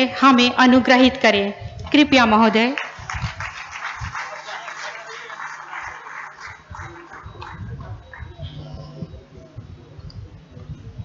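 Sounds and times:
audience applauding: 2.7 - 8.4
murmuring voices: 3.0 - 11.0.

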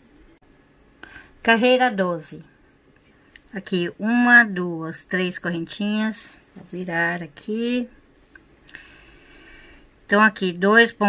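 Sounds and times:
soft hiss: 0.0 - 4.6, 5.2 - 10.9.

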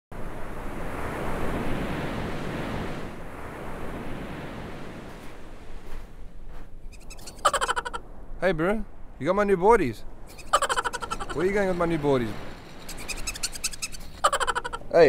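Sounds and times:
ocean surf breaking wave: 0.2 - 6.1, 10.2 - 15.0.

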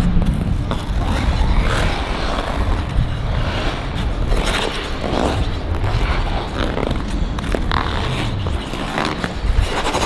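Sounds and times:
low rumble: 0.0 - 10.0
skate blades scraping ice: 0.0 - 10.0.

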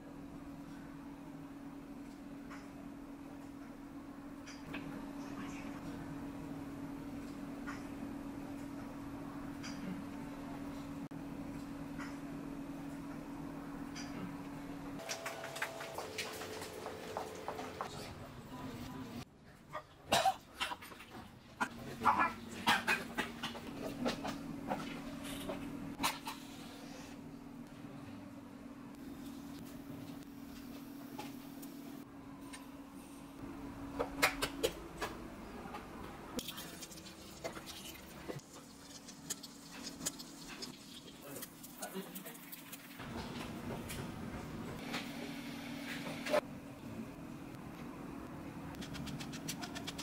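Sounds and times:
steady low hum: 0.0 - 19.3, 21.6 - 50.0.

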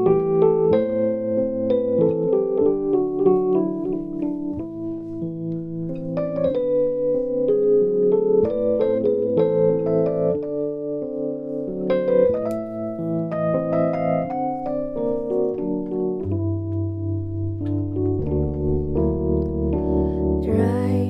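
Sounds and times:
electric piano playing: 0.0 - 21.0.

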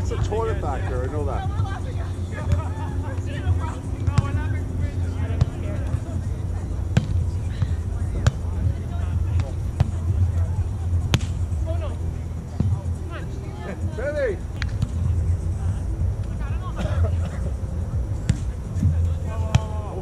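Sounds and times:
scattered voices: 0.0 - 20.0.

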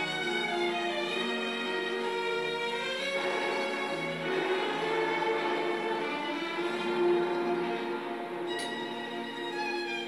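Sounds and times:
orchestral held chords: 0.0 - 10.0.

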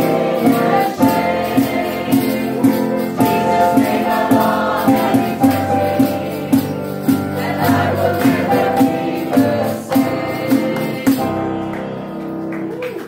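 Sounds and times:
choir singing gospel: 0.0 - 12.5
instrumental accompaniment with beat: 0.0 - 13.0.

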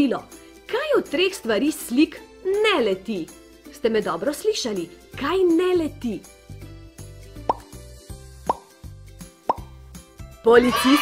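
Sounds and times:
light background music with bass: 0.0 - 11.0.

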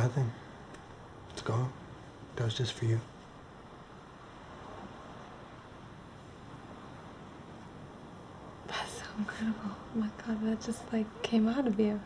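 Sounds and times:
faint room hiss: 0.0 - 12.0.

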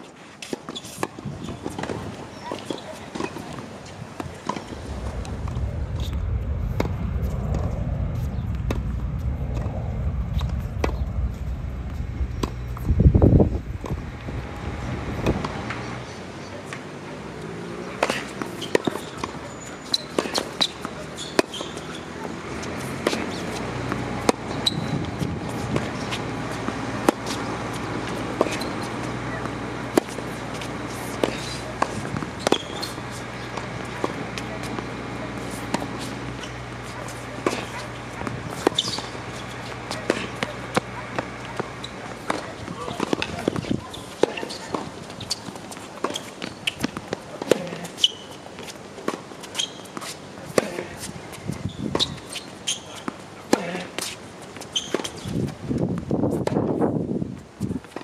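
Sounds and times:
steady low hum: 3.6 - 16.5
tennis ball struck and bouncing: 12.4 - 12.9, 13.8 - 16.0, 17.8 - 51.1.

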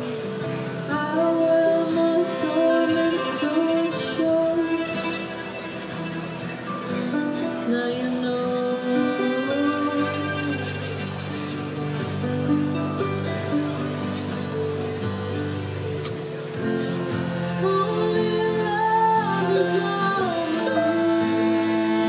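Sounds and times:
cello: 0.0 - 22.0
guitar: 0.0 - 22.0
violin: 0.0 - 22.0
woman singing: 0.9 - 5.4, 7.3 - 10.9, 17.4 - 22.0.

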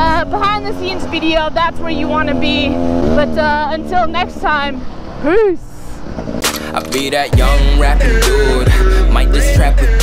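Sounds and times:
rap music: 6.4 - 10.0.

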